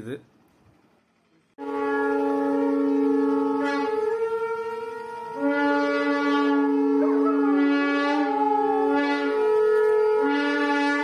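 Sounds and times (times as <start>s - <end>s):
reedy wind instrument chord: 1.6s - 11.0s.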